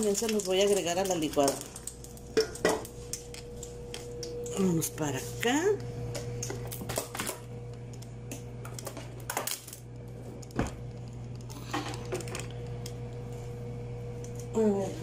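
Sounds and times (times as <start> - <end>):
objects clicking on a counter: 0.0 - 4.8
steady low hum: 0.0 - 15.0.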